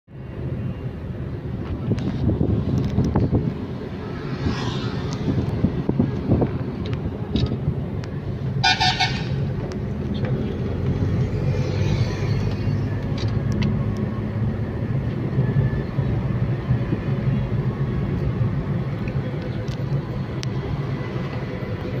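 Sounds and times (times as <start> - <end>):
car driving rumble: 0.2 - 22.0
car horn honk: 8.6 - 9.4.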